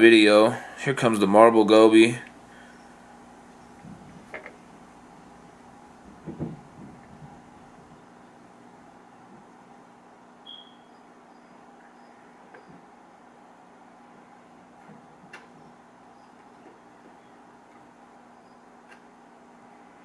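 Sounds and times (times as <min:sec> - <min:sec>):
faint steady hum: 0:00.0 - 0:20.0
soft knocks: 0:06.1 - 0:08.0.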